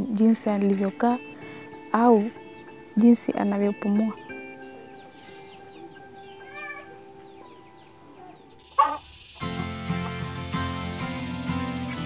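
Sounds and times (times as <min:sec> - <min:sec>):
plucked or strummed music: 0:00.0 - 0:08.2, 0:09.4 - 0:12.0.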